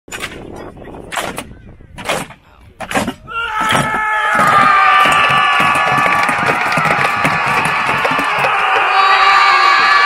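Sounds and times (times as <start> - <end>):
knocks and clatter: 1.2 - 9.0
crowd yelling battle cry: 3.5 - 10.0.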